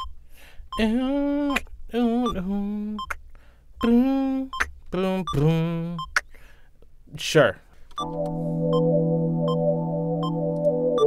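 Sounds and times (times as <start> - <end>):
man humming: 0.8 - 3.2, 3.8 - 6.4.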